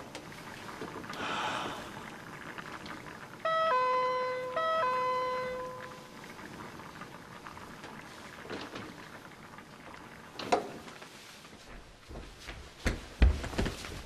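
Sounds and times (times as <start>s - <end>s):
two-tone doorbell chime: 3.5s - 6.0s.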